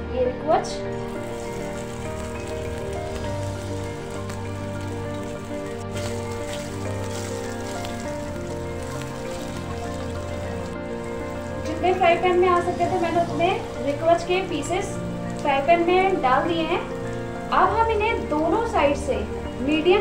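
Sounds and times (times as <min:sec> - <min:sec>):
background music: 0:00.0 - 0:20.0
food sizzling in hot oil: 0:00.7 - 0:20.0.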